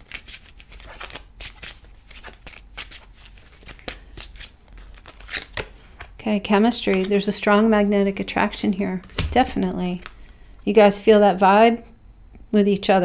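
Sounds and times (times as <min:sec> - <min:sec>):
cards being shuffled: 0:00.0 - 0:06.2, 0:06.8 - 0:07.3, 0:09.0 - 0:10.4.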